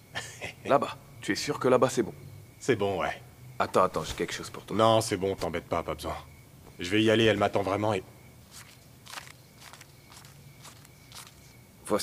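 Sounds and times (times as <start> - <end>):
paper banknotes rustling: 8.4 - 11.5.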